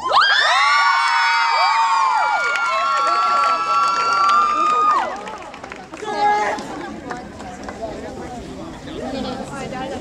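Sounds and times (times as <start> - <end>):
young voices screaming and cheering: 0.0 - 5.2.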